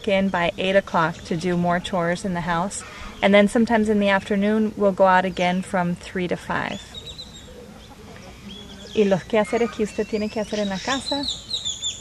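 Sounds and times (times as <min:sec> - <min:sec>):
chickens clucking: 0:06.6 - 0:11.5.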